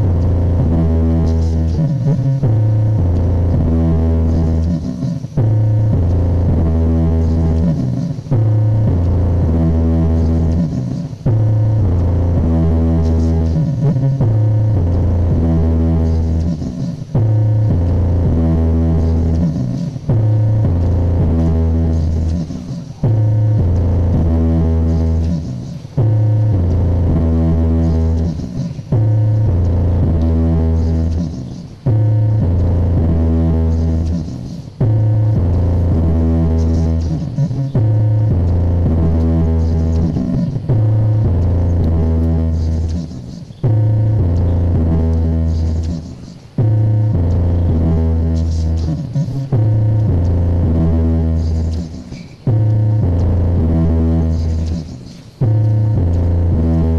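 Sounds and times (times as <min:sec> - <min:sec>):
bass-heavy electronic music: 0:00.0 - 0:56.9.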